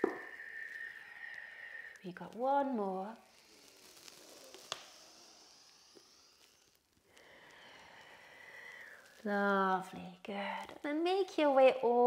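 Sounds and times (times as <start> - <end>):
person breathing: 0.0 - 2.0, 3.2 - 9.2.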